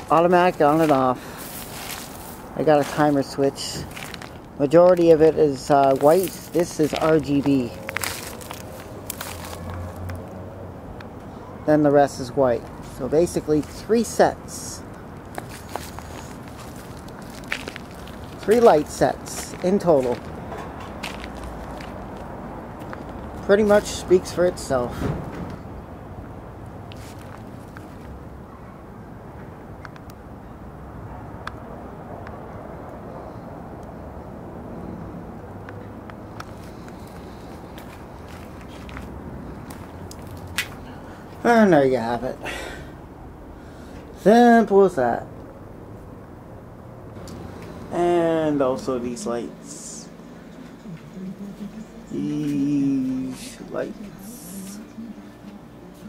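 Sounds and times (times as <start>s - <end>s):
light clicks and scuffs: 0.0s - 5.2s, 5.8s - 10.2s, 15.1s - 23.9s, 26.8s - 28.2s, 35.6s - 41.4s
low outdoor rumble: 33.2s - 56.0s.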